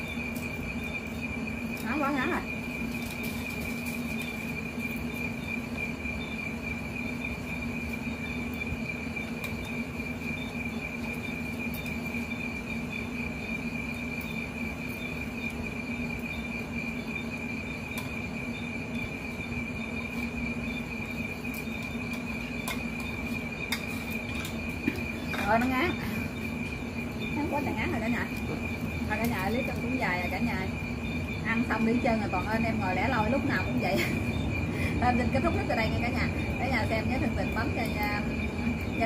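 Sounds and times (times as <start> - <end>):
insects chirring: 0.0 - 39.0.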